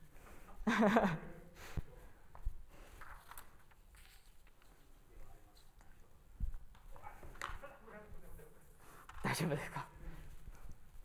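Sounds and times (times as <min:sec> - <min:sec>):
indistinct voices in a hall: 0:04.5 - 0:10.9.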